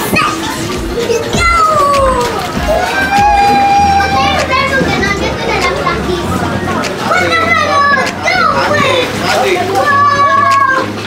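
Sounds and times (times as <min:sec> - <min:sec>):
music playing: 0:00.0 - 0:11.0
young children chattering: 0:00.0 - 0:11.0.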